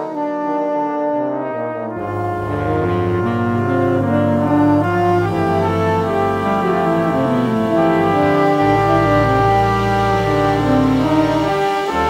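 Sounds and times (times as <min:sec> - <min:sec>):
jazz orchestra brass chords: 0:00.0 - 0:12.0.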